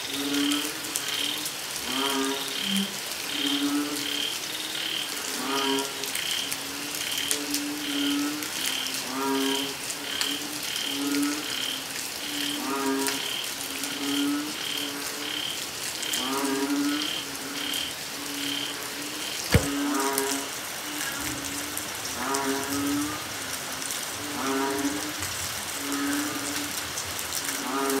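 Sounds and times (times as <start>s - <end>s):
chorus of frogs: 0.0s - 28.0s
sharp knock: 19.5s - 19.8s.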